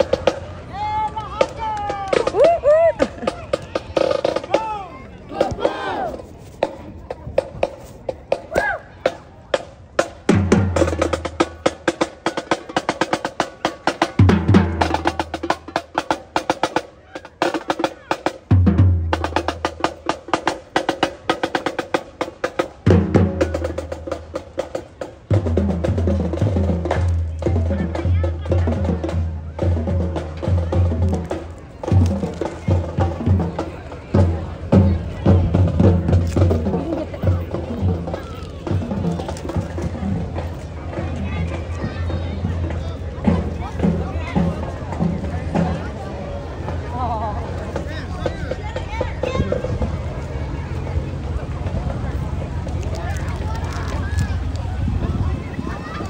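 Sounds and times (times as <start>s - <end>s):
marching band playing: 0.0s - 52.6s
drums playing fast strokes: 9.6s - 47.0s.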